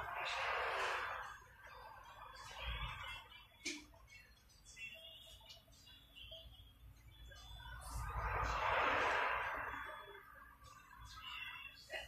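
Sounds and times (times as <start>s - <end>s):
rushing noise: 0.0s - 2.7s, 7.8s - 10.4s.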